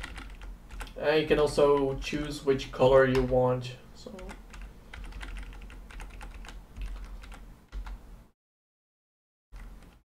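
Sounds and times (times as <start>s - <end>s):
computer keyboard keys clicking: 0.0s - 1.0s, 4.2s - 8.0s.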